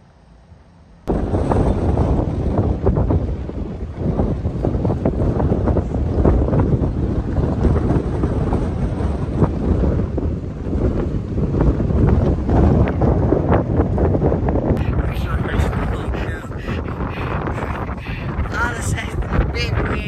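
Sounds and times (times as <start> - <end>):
gusty wind buffeting microphone: 1.0 - 20.0.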